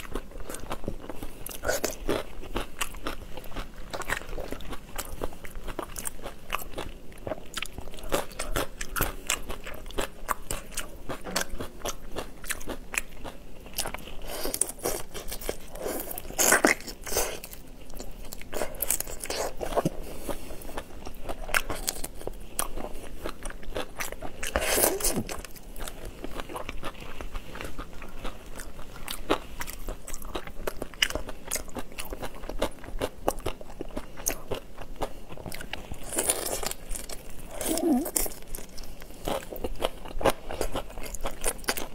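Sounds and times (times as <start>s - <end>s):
crunchy chewing: 0.0s - 41.9s.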